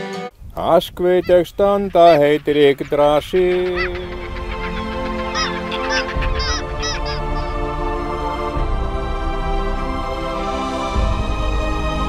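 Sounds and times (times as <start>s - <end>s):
background music with held notes: 0.0s - 0.3s, 1.3s - 12.0s
bird calling: 0.6s - 7.8s.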